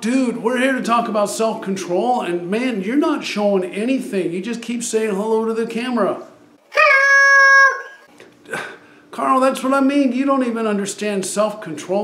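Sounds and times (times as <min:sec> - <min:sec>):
man's falsetto puppet voice: 0:06.7 - 0:08.1.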